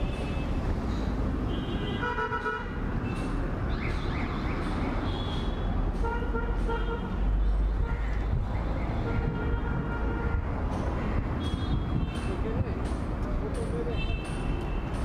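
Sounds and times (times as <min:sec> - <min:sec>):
engine and road noise: 0:00.0 - 0:15.0.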